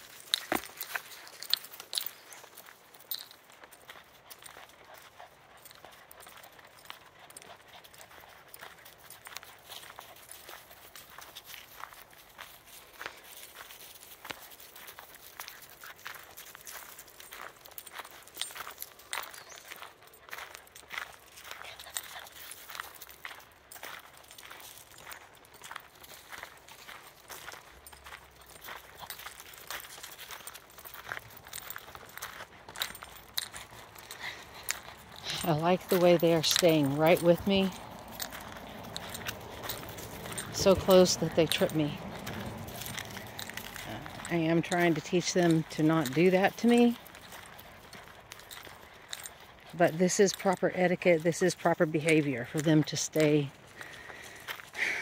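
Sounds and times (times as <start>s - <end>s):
footsteps on gravel: 0.0s - 55.0s.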